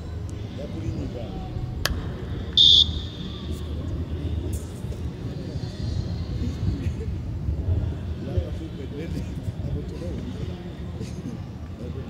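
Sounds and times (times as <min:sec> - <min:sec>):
distant voices: 0:00.0 - 0:12.0
shrill whistle blast: 0:02.6 - 0:03.6.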